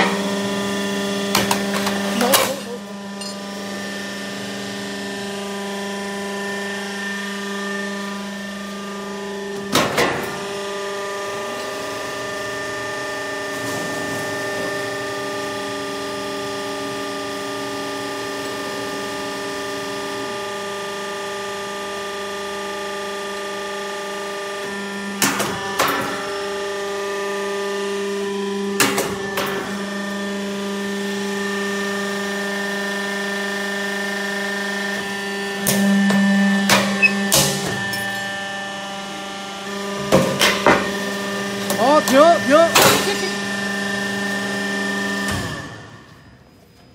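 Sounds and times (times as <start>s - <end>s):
roll forming machine hum: 0.0s - 46.2s.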